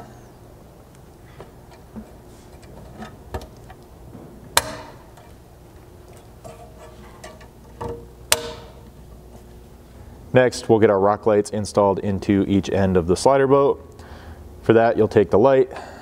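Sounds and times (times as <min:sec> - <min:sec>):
clip nuts snapping into place: 0:04.6 - 0:05.4, 0:06.5 - 0:08.9.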